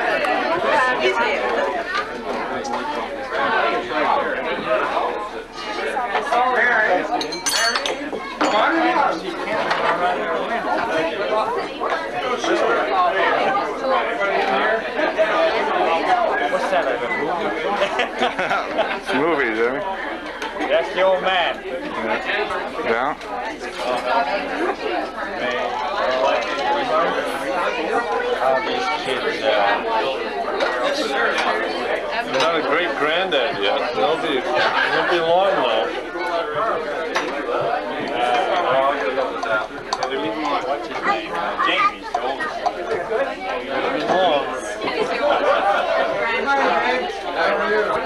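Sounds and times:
overlapping chatter of people: 0:00.0 - 0:48.0
dishes and utensils clinking: 0:07.1 - 0:08.9.

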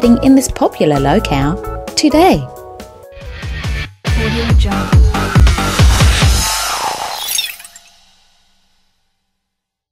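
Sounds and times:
electronic music outro: 0:03.3 - 0:08.3
glassy shatter sound effect: 0:05.7 - 0:08.8.

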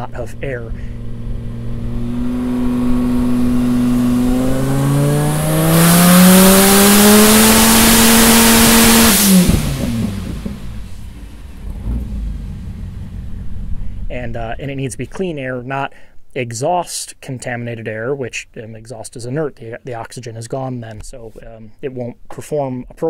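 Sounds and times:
car engine revving on dyno: 0:01.1 - 0:13.8.

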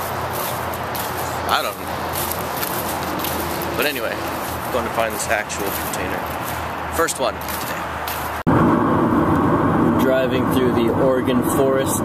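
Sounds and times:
car driving heard from inside: 0:07.5 - 0:12.0.

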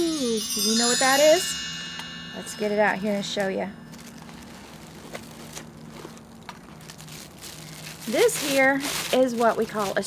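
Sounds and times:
packaging rustling: 0:03.8 - 0:10.0.

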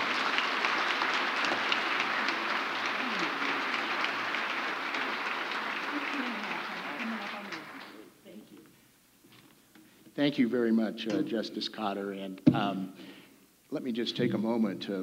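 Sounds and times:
audience applauding: 0:00.0 - 0:08.2.

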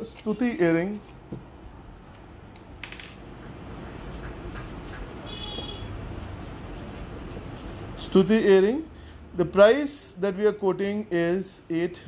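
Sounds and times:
marker scratching on paper: 0:01.0 - 0:01.8, 0:03.7 - 0:08.2.

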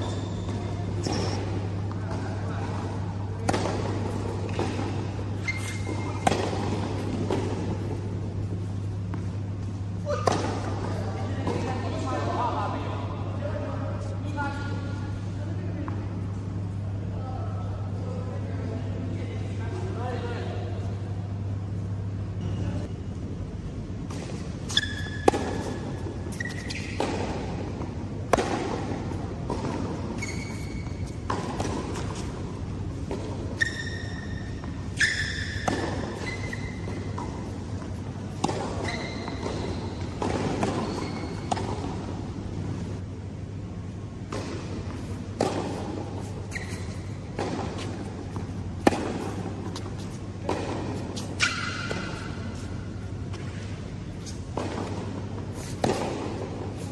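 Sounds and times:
court shoe squeaks: 0:00.0 - 0:02.2, 0:03.6 - 0:07.8, 0:24.6 - 0:27.1, 0:30.1 - 0:32.0, 0:33.5 - 0:37.6, 0:38.5 - 0:41.7, 0:46.2 - 0:48.0
racquet hitting tennis ball: 0:00.3 - 0:09.4, 0:10.0 - 0:11.7, 0:24.1 - 0:42.9, 0:44.2 - 0:53.8, 0:54.5 - 0:56.9
tennis ball bounces: 0:00.4 - 0:11.7, 0:24.1 - 0:42.3, 0:44.2 - 0:53.7, 0:54.5 - 0:56.9.

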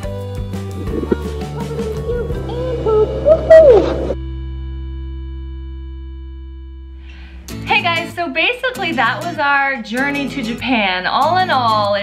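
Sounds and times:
woman hooting: 0:00.8 - 0:04.2
steady held tone: 0:00.8 - 0:07.6.

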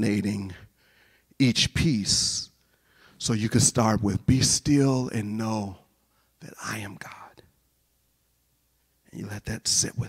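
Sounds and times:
man speaking softly: 0:06.4 - 0:07.4, 0:09.1 - 0:10.0.

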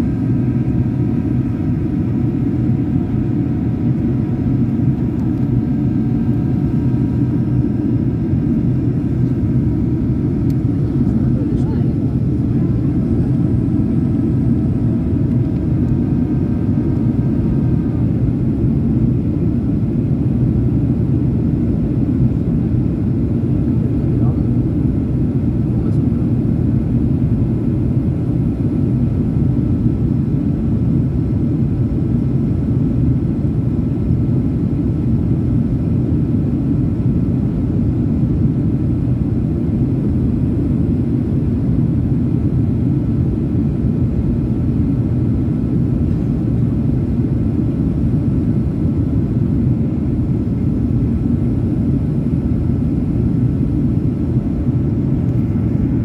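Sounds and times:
airliner cabin engine rumble: 0:00.0 - 0:56.0.

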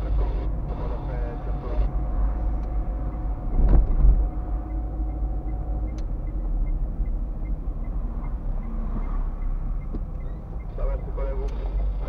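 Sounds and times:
car engine and road noise: 0:00.0 - 0:12.0
loud thump: 0:03.5 - 0:04.3.

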